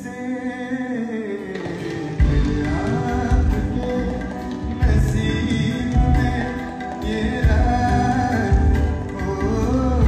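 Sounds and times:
keyboard: 0:00.0 - 0:10.0
electric guitar: 0:01.0 - 0:10.0.

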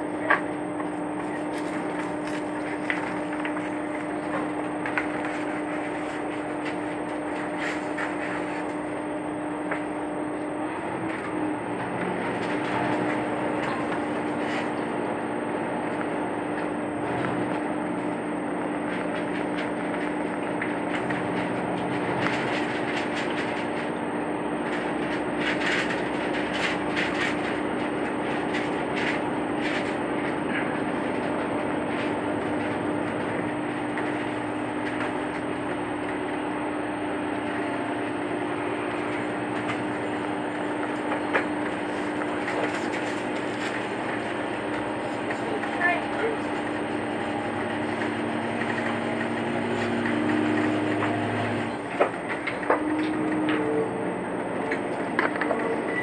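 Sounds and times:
wheels clicking on rail joints: 0:00.0 - 0:09.0, 0:10.7 - 0:56.0
train running noise with hum: 0:00.0 - 0:56.0.

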